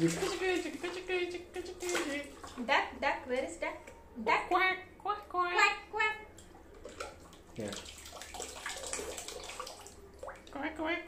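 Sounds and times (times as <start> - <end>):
water splashing into bath: 0.0 - 4.6, 6.2 - 11.0
water squirting from rubber duck: 7.0 - 10.1.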